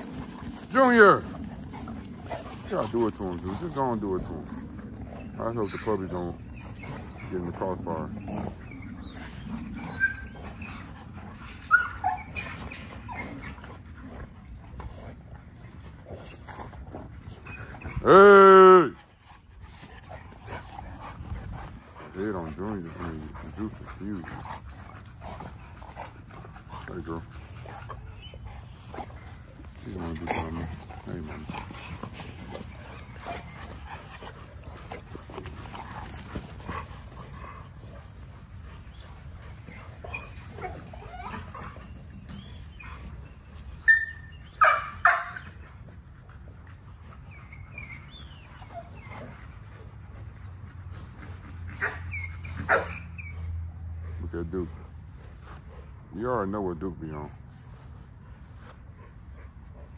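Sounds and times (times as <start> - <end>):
dogs scuffling: 0.0 - 8.0, 19.5 - 43.8
dog crying: 11.6 - 13.4, 39.1 - 43.0.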